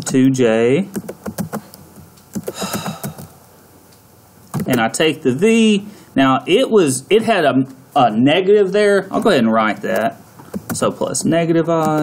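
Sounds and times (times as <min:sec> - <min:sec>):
computer keyboard typing: 0:00.9 - 0:01.7, 0:02.3 - 0:03.3, 0:04.5 - 0:04.8, 0:09.9 - 0:11.0, 0:11.8 - 0:12.0.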